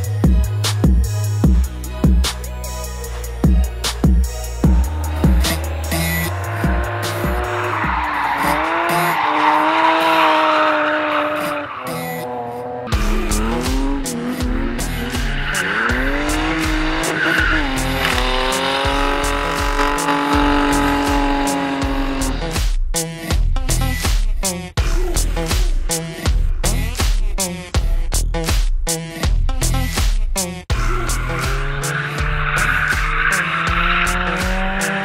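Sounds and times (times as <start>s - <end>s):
music with low steady beat: 0.0s - 8.2s, 12.9s - 35.0s
car engine revving: 3.7s - 22.6s, 30.7s - 35.0s
tyres squealing: 5.5s - 12.3s, 14.8s - 21.6s.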